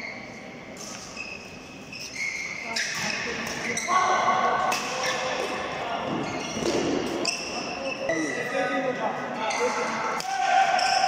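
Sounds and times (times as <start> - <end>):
shoes squeaking on court: 0.0 - 4.0, 4.8 - 8.6.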